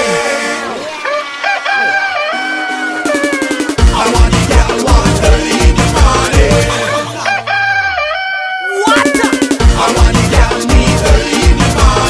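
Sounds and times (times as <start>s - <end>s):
rooster crowing sample: 0.9s - 3.8s, 6.9s - 9.6s.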